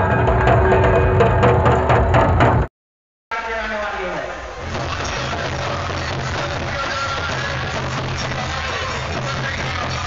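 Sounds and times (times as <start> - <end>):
crowd din: 3.3 - 10.0
procession drums beating: 4.6 - 10.0.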